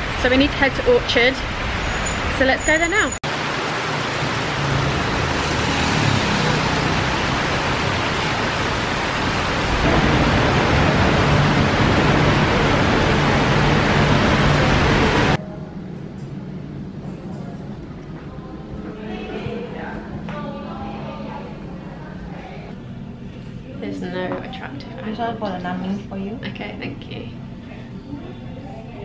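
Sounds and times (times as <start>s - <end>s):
heavy rain on wet pavement: 3.2s - 15.4s
low hum of road traffic: 3.2s - 17.2s.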